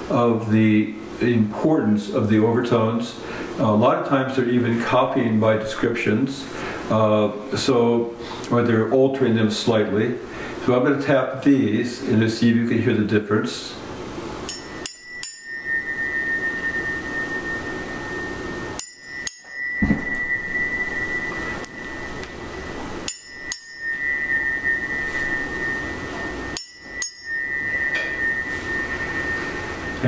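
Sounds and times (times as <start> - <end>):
tuning forks clinking and ringing: 14.4 - 30.0.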